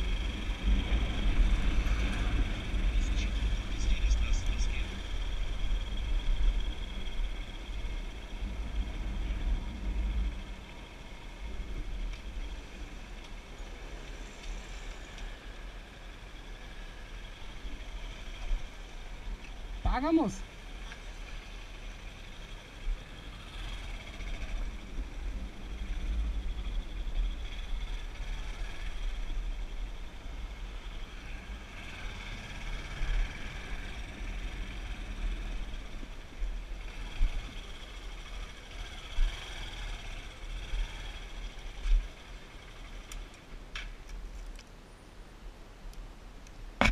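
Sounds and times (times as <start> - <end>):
motorcycle engine: 0.0 - 43.3.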